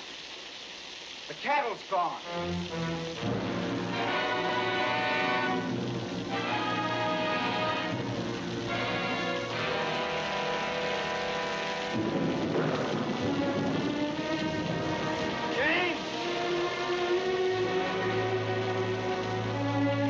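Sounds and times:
heavy rain hiss: 0.0s - 20.0s
orchestral music with sustained chords: 2.2s - 20.0s
thunder rumble: 3.2s - 18.3s.

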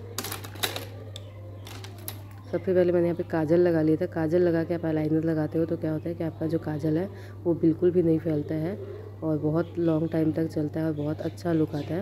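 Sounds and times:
makeup items clicking and rattling: 0.2s - 2.4s.

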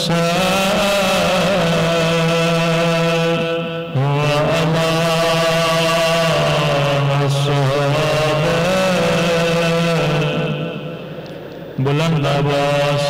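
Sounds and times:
man chanting: 0.0s - 11.1s, 11.8s - 13.0s.

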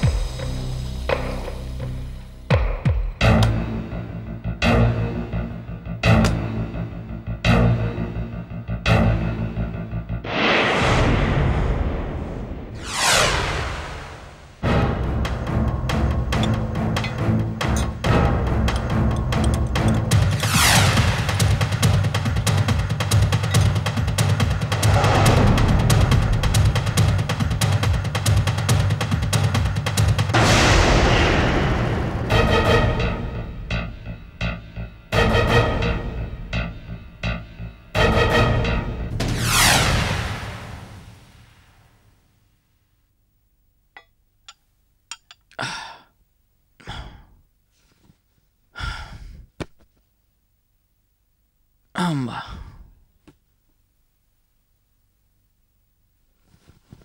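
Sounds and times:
fast pounding drums: 0.0s - 1.4s, 14.6s - 34.6s
dramatic score: 0.0s - 41.4s
sweeping swells: 10.3s - 14.7s
man sighing heavily: 45.5s - 46.2s, 46.8s - 47.4s, 48.7s - 49.5s, 51.9s - 53.0s.

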